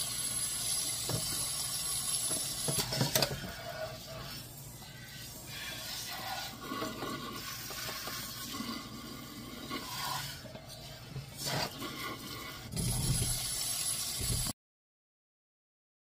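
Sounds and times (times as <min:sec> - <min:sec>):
tap water running into sink: 0:00.0 - 0:04.1, 0:05.8 - 0:10.6, 0:11.3 - 0:14.5
sponge scrubbing utensil: 0:02.3 - 0:14.5
dishes scraping and clinking: 0:05.8 - 0:13.4.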